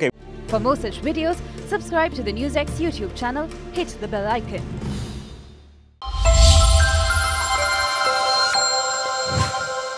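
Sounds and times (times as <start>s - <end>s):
sustained electronic notes: 6.0s - 9.9s.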